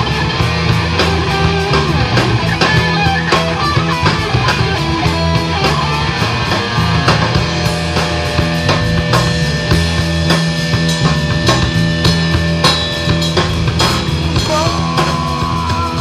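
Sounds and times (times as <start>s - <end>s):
bass guitar: 0.0s - 16.0s
distorted electric guitar: 0.0s - 16.0s
drum kit beat: 0.0s - 16.0s.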